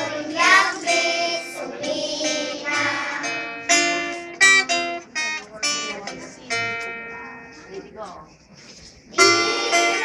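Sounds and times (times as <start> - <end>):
acoustic guitar strummed chords: 0.0 - 7.9, 9.1 - 10.0.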